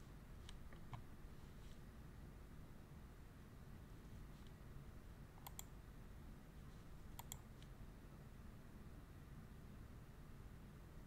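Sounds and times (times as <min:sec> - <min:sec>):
computer mouse clicking: 0:05.4 - 0:05.8, 0:07.1 - 0:07.7.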